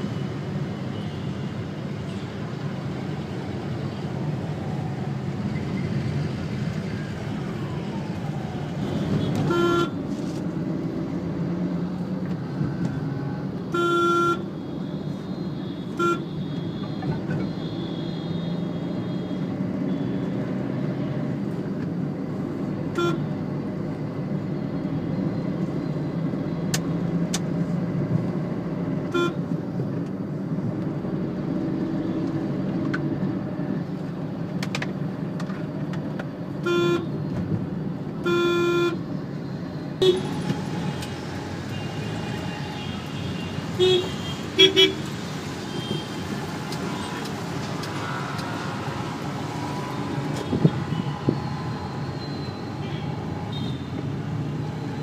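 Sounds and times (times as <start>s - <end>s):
car engine and road noise: 0.0s - 55.0s
car horn toots: 36.6s - 37.1s, 38.2s - 39.0s.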